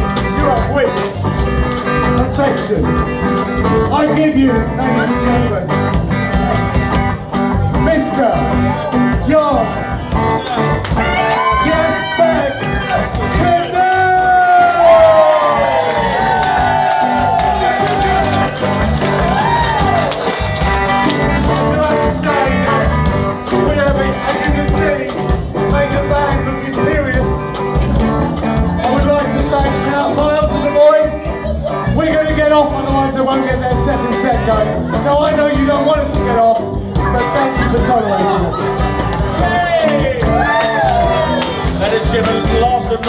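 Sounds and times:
bending guitar lead: 0.0 - 43.0
live blues rock band: 0.0 - 43.0.

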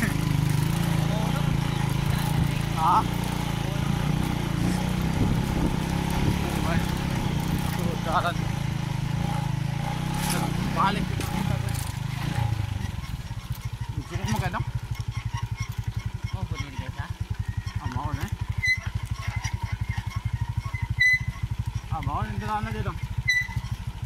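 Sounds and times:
small motorcycle engine: 0.0 - 24.0.

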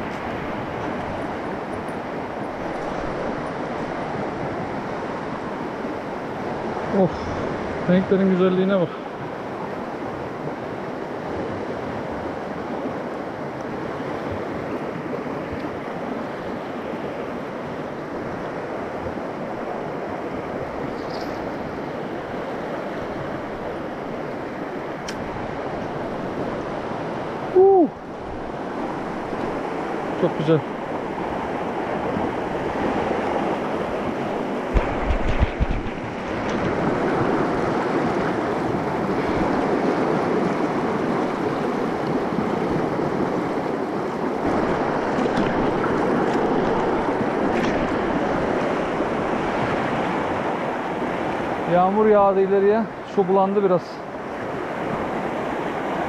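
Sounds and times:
stream rushing over rocks: 0.0 - 56.0
low thumps: 34.7 - 36.9.

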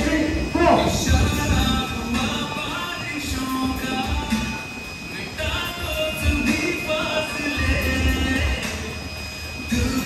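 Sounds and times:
music with low beat: 0.0 - 6.9.

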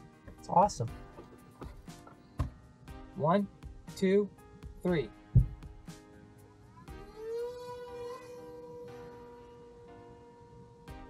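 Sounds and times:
background music: 0.0 - 11.0
electric motor whine: 7.0 - 11.0.

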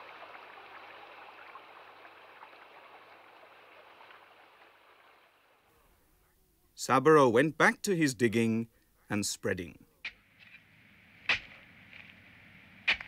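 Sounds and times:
faint flowing stream: 0.0 - 9.6.

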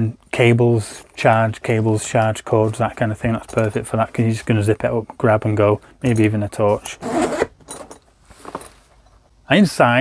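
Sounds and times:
bag zipper being pulled: 7.0 - 7.5.

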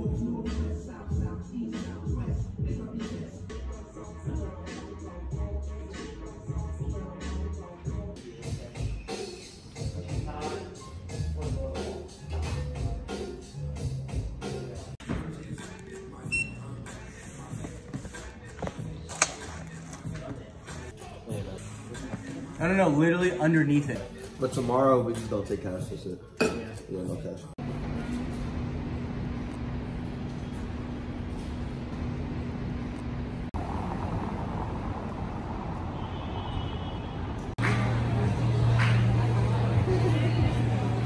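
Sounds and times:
short electronic beep: 16.3 - 16.7
passing car traffic: 27.6 - 41.0.

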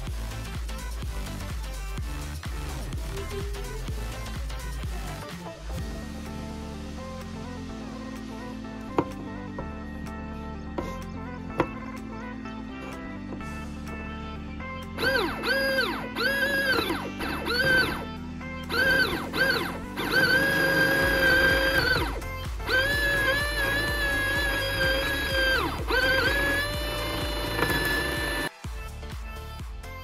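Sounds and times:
electronic music with steady beat: 0.0 - 30.0
small electric motor whining: 15.0 - 28.5.

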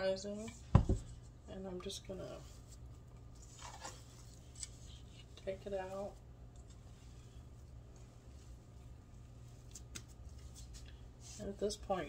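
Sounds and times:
dough rustling: 2.1 - 12.0.

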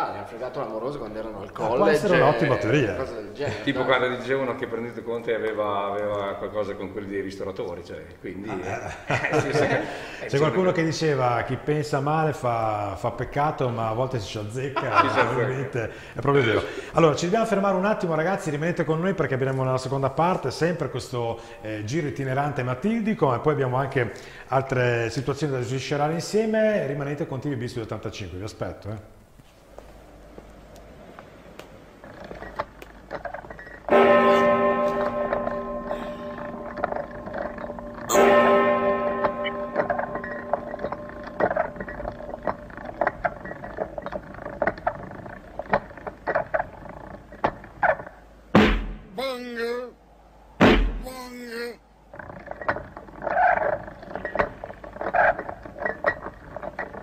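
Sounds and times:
knocks and clanks: 31.6 - 49.2, 52.1 - 57.0
large bell ringing: 33.9 - 43.7.

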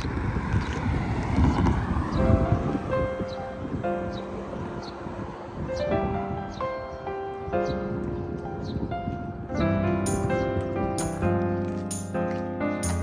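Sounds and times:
wind rumbling on microphone: 0.0 - 13.0
soft piano-like music: 2.1 - 13.0.

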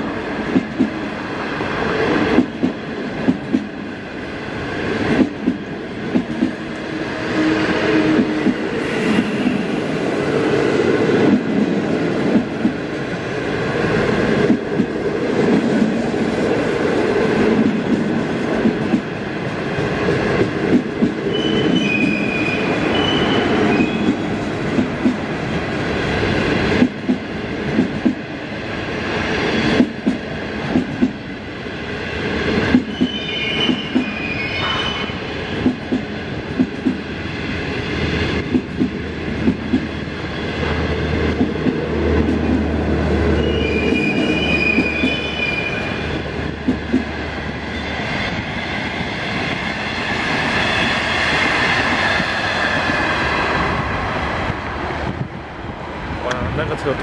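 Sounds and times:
train wheels rumbling on rail: 0.0 - 57.0
high-pitched wheel squeals: 21.3 - 24.2, 32.9 - 35.2, 43.3 - 46.2.

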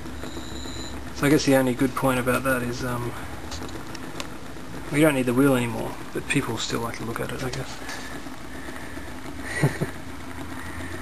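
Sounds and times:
battery charger humming: 0.0 - 1.4, 7.8 - 11.0
rotor wheel spinning: 0.0 - 11.0.

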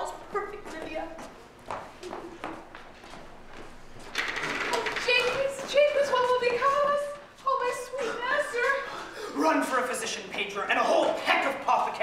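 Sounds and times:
actors speaking lines: 4.9 - 12.0.

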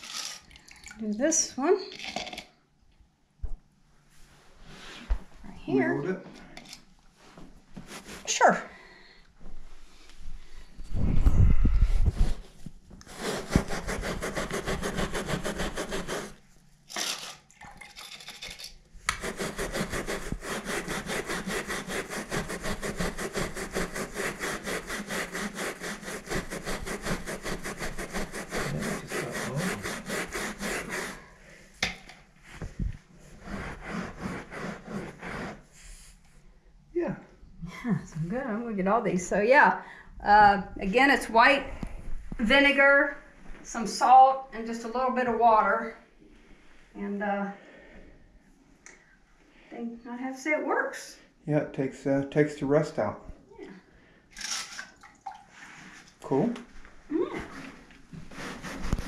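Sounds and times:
brush scrubbing wet carpet: 13.1 - 16.4, 19.1 - 31.3, 58.2 - 59.0.

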